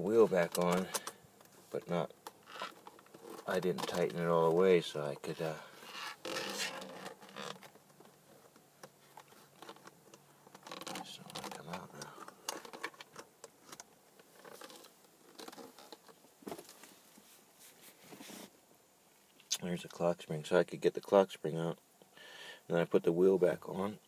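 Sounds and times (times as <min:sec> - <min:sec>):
plastic and metal clicks and scrapes: 0:00.4 - 0:01.2, 0:08.5 - 0:16.2.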